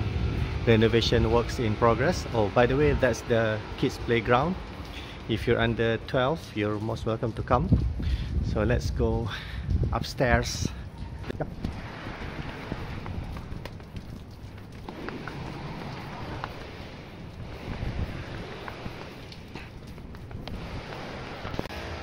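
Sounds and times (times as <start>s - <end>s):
wind rumble on microphone: 0.0s - 22.0s
footsteps climbing stairs: 11.2s - 21.7s.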